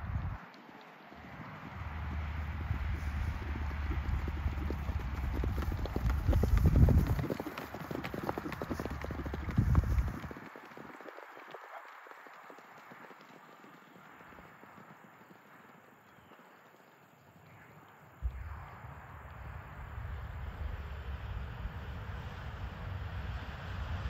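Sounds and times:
horse hoofbeats on grass: 0:00.6 - 0:18.4.

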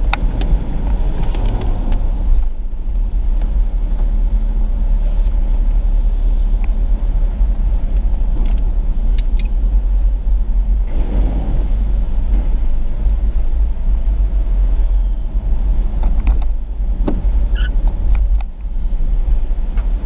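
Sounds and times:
car driving on wet road: 0:00.0 - 0:20.0.

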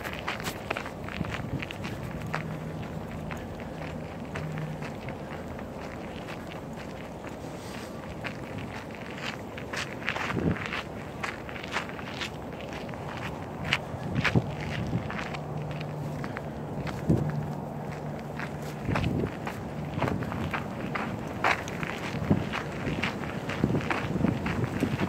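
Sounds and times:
footsteps on paved road: 0:00.0 - 0:25.0
low steady hum: 0:00.0 - 0:25.0.

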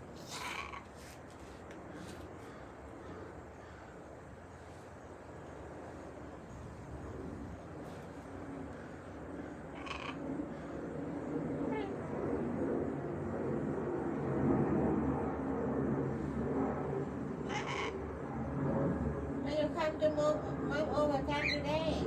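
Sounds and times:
parrot squawk: 0:00.2 - 0:00.9, 0:09.7 - 0:10.2, 0:17.4 - 0:18.0
parrots calling: 0:00.2 - 0:01.0, 0:09.7 - 0:10.2, 0:17.4 - 0:18.0.

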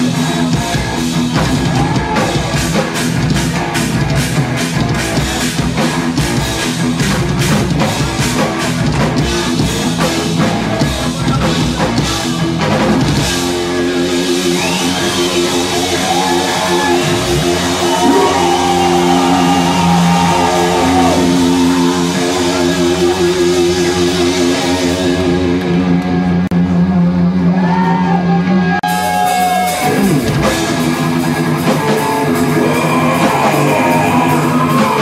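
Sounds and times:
electric guitar chords: 0:00.0 - 0:27.6, 0:28.5 - 0:35.0
drum kit: 0:00.0 - 0:35.0
sliding guitar tones: 0:29.1 - 0:35.0.

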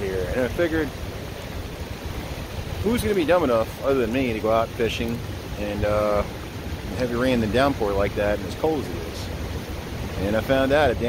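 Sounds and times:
fast-flowing river: 0:00.0 - 0:11.0
heavy rain: 0:00.0 - 0:11.0
wind buffeting the microphone: 0:00.0 - 0:11.0.

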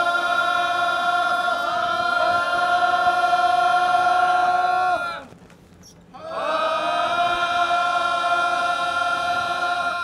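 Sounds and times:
group chanting in unison: 0:00.0 - 0:05.3, 0:06.2 - 0:10.0.

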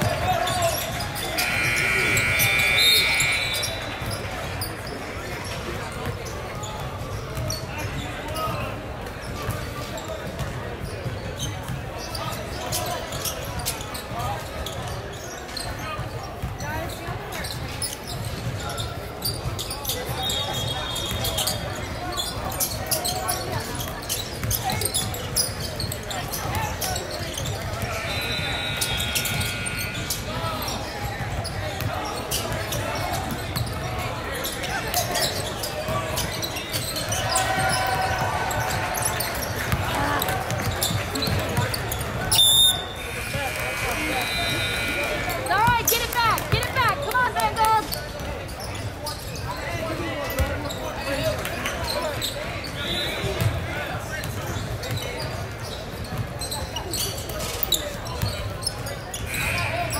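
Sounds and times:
sneakers squeaking: 0:00.0 - 0:59.9
high held tone: 0:01.3 - 0:04.3, 0:27.8 - 0:30.6
indistinct shouts: 0:01.4 - 0:04.0.

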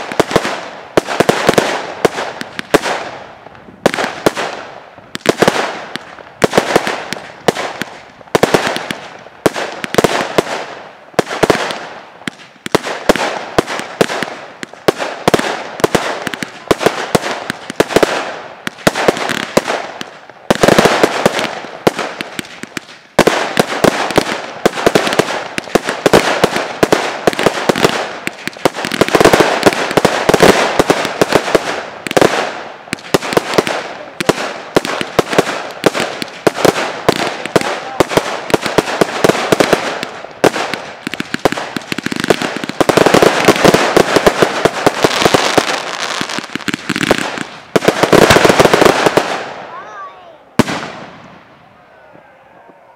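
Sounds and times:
firework bangs: 0:00.0 - 0:51.7
fireworks crackling: 0:00.0 - 0:52.9.

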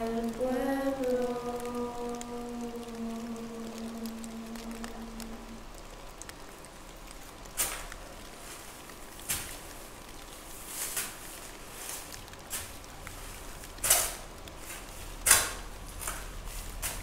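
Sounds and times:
person singing long note: 0:00.0 - 0:05.7
faint crackles: 0:00.0 - 0:17.0.

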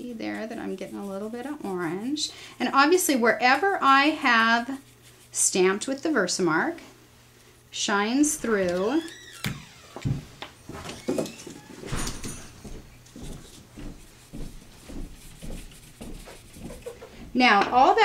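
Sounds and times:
dry brush strokes on cardstock: 0:00.0 - 0:06.7, 0:13.9 - 0:17.0.

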